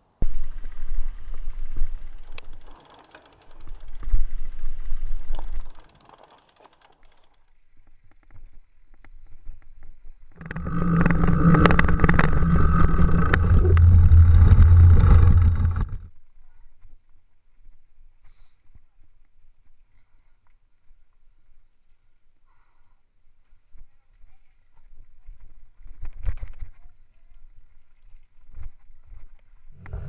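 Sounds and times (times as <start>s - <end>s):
steady hum: 0.0s - 5.8s, 10.4s - 16.1s, 29.8s - 30.0s
bike tyres rumbling and rattling: 0.0s - 16.1s, 29.7s - 30.0s.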